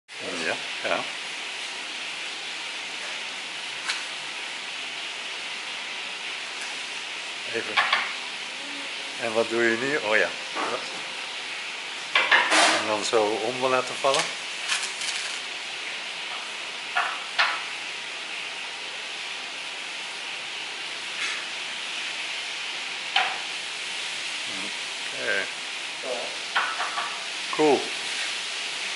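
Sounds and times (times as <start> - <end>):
steady hiss: 0.1 - 28.9.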